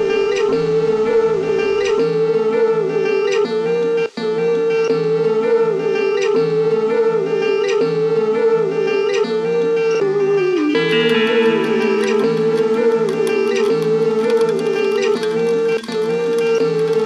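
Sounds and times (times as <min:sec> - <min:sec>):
instrumental music with beat: 0:10.7 - 0:17.0.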